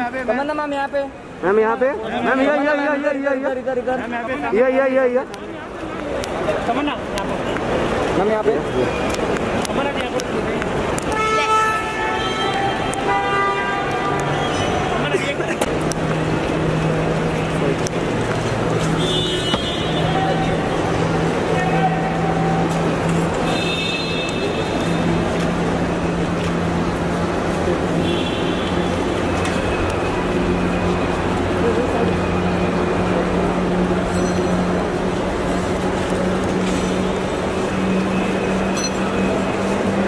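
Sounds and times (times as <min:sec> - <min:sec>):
crowd: 0:00.0 - 0:40.0
traffic noise: 0:00.0 - 0:40.0
vehicle horns honking: 0:11.0 - 0:15.1, 0:18.9 - 0:20.4, 0:23.4 - 0:25.1, 0:27.4 - 0:29.4.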